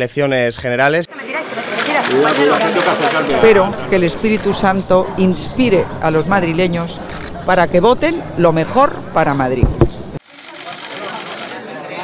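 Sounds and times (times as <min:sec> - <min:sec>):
low crowd murmur: 0:01.1 - 0:09.1, 0:10.0 - 0:12.0
camera shutters clicking: 0:10.3 - 0:11.6.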